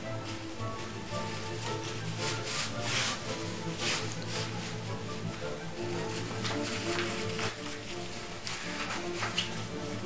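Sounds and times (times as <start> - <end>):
background music with held tones: 0.0 - 10.0
necktie rubbing swishes: 0.1 - 10.0.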